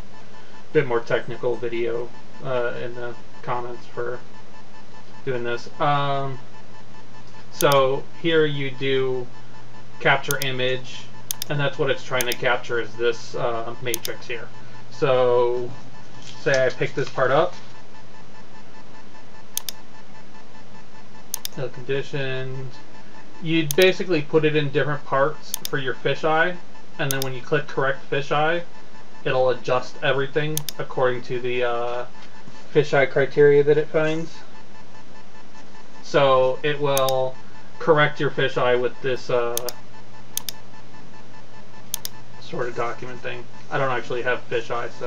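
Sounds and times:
steady background hiss: 0.0 - 17.9, 21.2 - 34.8, 35.6 - 45.0
low electrical hum: 0.0 - 45.0
mouse button clicks: 7.6 - 7.8, 10.3 - 10.5, 11.3 - 11.5, 12.2 - 12.4, 13.9 - 14.1, 19.6 - 19.8, 21.4 - 21.6, 25.5 - 25.8, 27.1 - 27.3, 40.4 - 40.6, 41.9 - 42.2.

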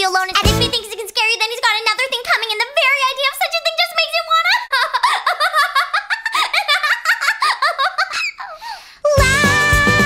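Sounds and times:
cartoon female voice giggling: 4.5 - 8.6.

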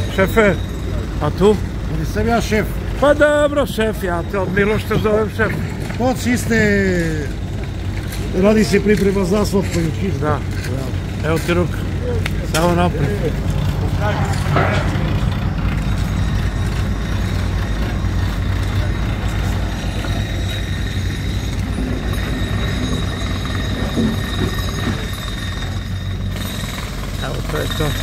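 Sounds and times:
diesel engine droning: 0.0 - 28.0.

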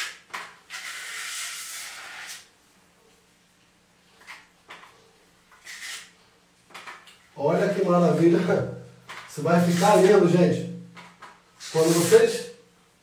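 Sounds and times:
trowel scraping wall tiles: 0.0 - 2.5, 5.5 - 6.2, 9.2 - 10.3, 11.6 - 12.4.

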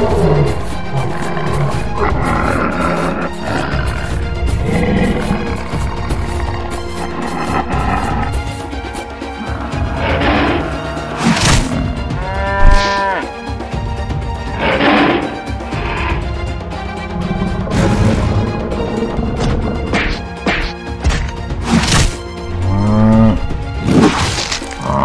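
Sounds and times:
roar-like bursts: 0.0 - 12.0
cartoon background music: 0.0 - 25.0.

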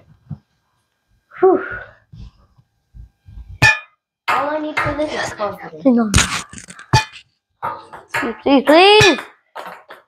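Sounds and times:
soft low thumps: 1.8 - 3.6.

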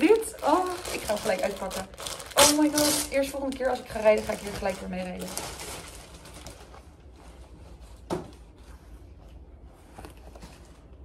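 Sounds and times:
plastic and fabric rustling: 0.0 - 11.0.

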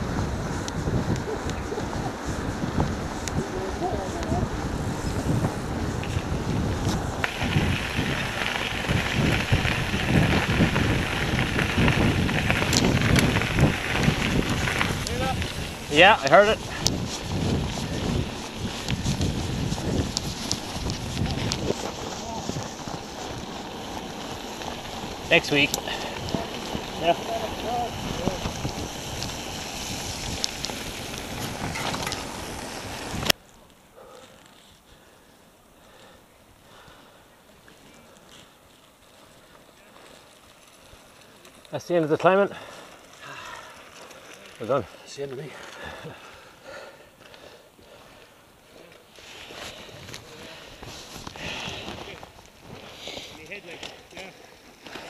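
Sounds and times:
wind buffeting microphone: 0.0 - 33.4, 49.4 - 54.1
bike rolling rumble and rattle: 0.0 - 35.1, 35.8 - 55.0.

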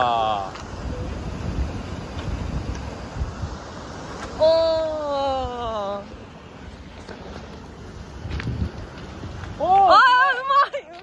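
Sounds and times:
surf: 0.0 - 11.0
wind buffeting microphone: 0.0 - 11.0.

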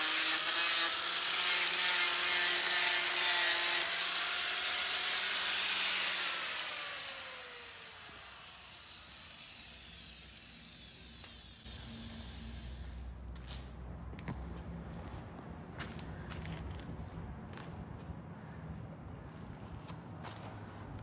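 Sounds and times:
angle grinder sanding metal: 0.0 - 13.0
grinder spinning down whine: 4.0 - 12.9.

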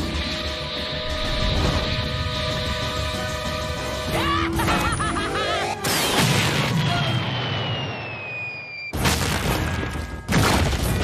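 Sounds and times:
high whistle gliding downward: 7.0 - 8.9.

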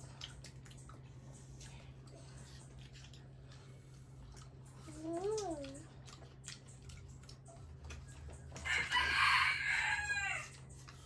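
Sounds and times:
rooster crowing: 8.6 - 10.6.

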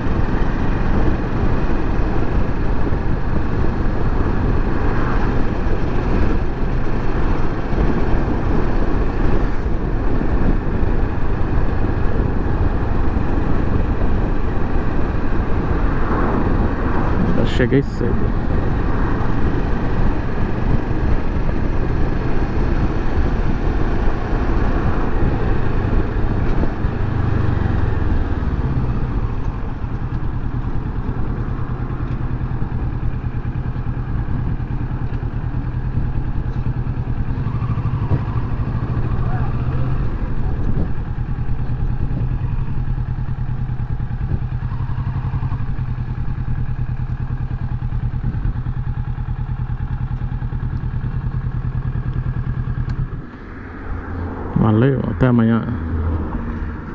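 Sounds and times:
motorcycle engine running: 0.0 - 56.9.

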